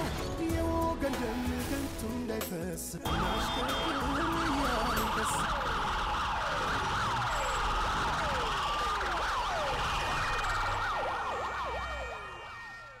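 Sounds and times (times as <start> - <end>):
siren falling whoops: 3.1 - 13.0.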